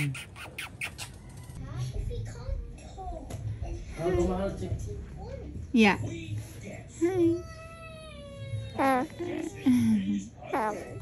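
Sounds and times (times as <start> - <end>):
kisses on baby's head: 0.0 - 1.2.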